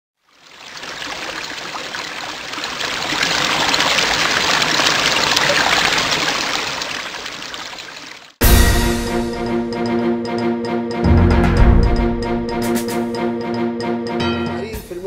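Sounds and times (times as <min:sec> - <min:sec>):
water trickling: 0:00.2 - 0:08.4.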